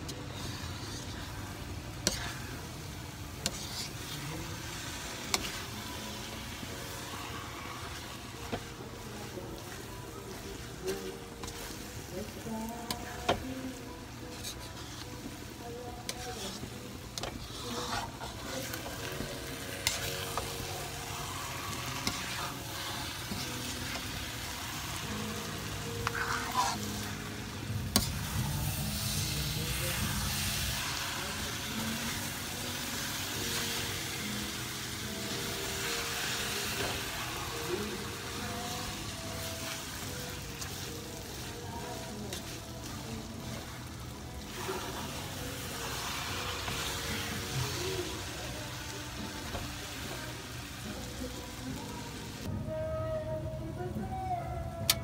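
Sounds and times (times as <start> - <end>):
rice mixture sizzling: 0.0 - 52.5
spoon scraping rice in pan: 2.0 - 2.6, 3.4 - 4.3, 5.2 - 5.7, 16.0 - 24.2, 26.0 - 27.2, 40.5 - 43.8.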